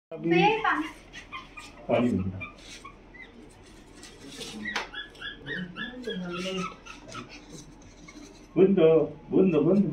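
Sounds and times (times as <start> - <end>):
puppies whimpering: 1.1 - 8.6.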